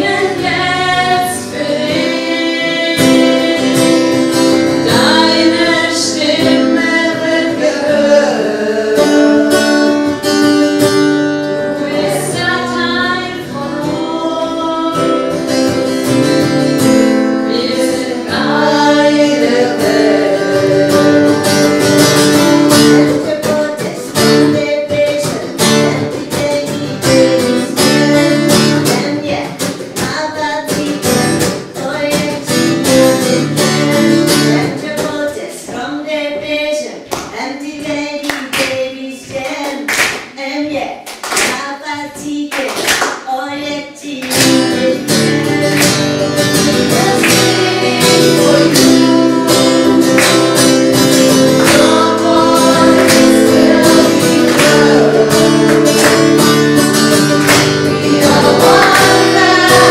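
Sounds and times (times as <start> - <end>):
group of women singing: 0.0 - 10.4, 11.5 - 31.2, 43.3 - 59.9
strummed acoustic guitar: 0.0 - 35.4, 44.2 - 59.9
woman singing lead: 0.0 - 59.9.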